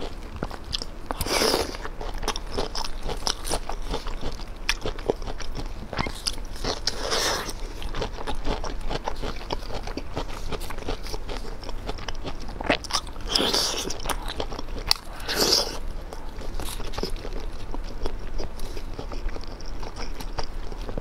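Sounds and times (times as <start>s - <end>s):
person chewing crunchy food: 0.0s - 21.0s.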